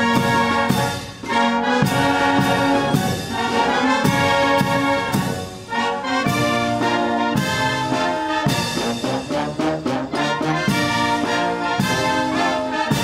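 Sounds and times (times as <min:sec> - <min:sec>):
brass band playing anthem: 0:00.0 - 0:13.0.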